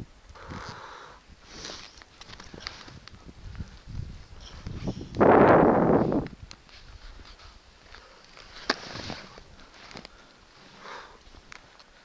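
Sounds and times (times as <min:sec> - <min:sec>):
skis scraping snow: 0:04.4 - 0:11.0.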